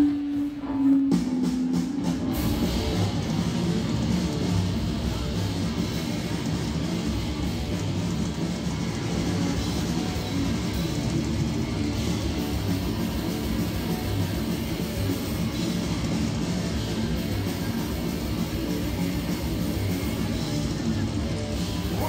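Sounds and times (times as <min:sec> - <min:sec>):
drum kit: 0:00.0 - 0:22.0
electric guitars: 0:00.0 - 0:22.0.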